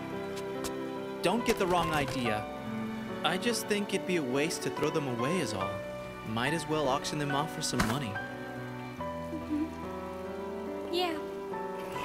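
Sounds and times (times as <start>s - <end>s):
steady falling rain: 0.0s - 12.0s.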